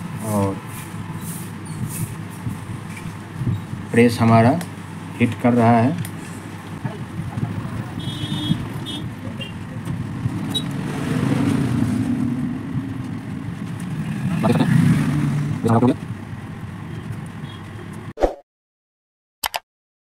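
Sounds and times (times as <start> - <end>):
road traffic rumble: 0.0 - 18.1.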